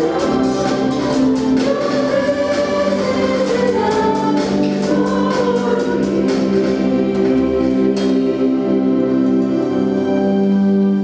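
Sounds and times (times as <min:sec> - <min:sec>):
drum kit beat: 0:00.0 - 0:08.4
church choir singing: 0:00.0 - 0:11.0
keyboard: 0:00.0 - 0:11.0.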